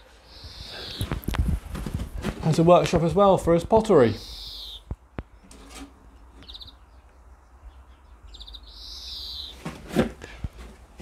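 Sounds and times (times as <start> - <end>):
small bird trilling: 0.2 - 1.2, 4.1 - 4.9, 6.4 - 7.0, 8.3 - 9.6.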